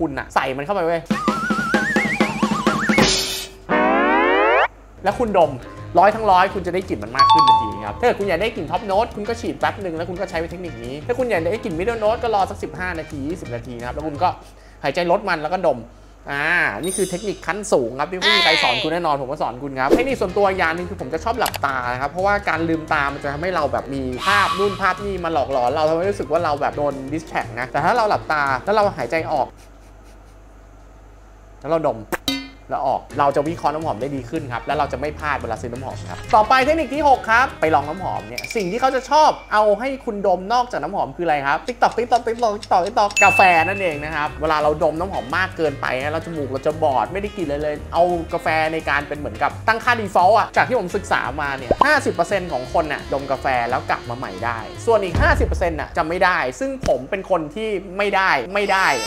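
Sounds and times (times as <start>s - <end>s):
cartoon tone sliding upward: 3.7s - 4.7s, 7.2s - 8.0s, 24.2s - 25.0s
man's voice: 54.9s - 56.4s.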